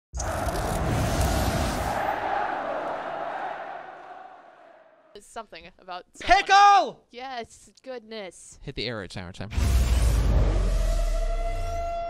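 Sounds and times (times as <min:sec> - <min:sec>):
crowd noise: 0:00.2 - 0:04.9.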